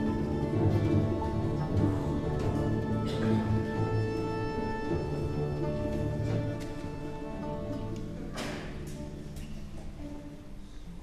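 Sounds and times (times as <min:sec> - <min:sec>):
folk string orchestra playing: 0:00.0 - 0:11.0.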